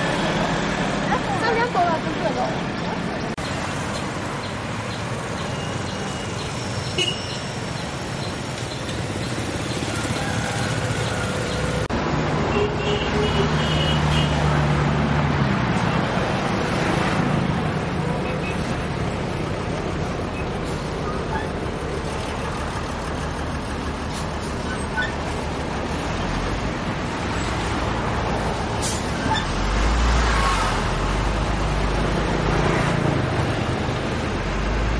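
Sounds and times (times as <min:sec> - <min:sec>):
road traffic roar: 0:00.0 - 0:34.9.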